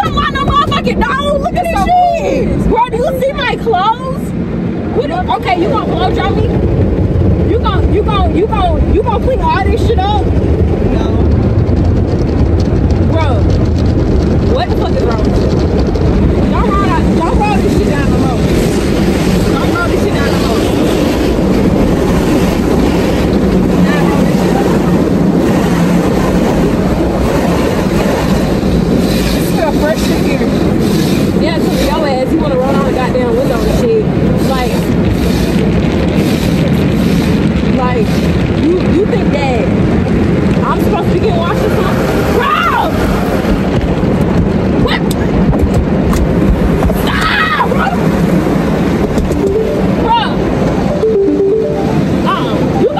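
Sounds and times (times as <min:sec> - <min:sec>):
water spraying against car: 0:00.0 - 0:50.8.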